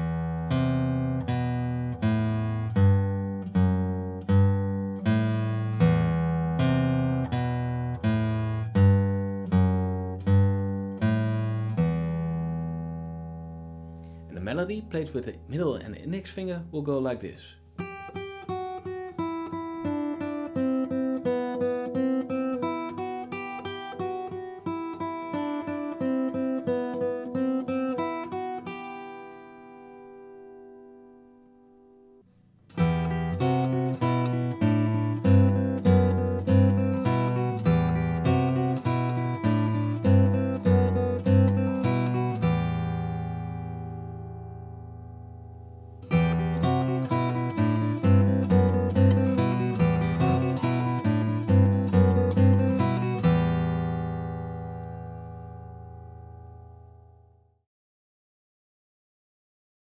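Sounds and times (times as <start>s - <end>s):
fingerstyle acoustic guitar: 0.0s - 16.4s, 17.6s - 57.5s.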